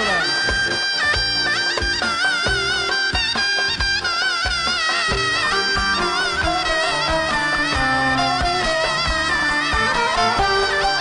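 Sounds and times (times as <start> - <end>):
shrill reed wind instrument: 0.0 - 11.0.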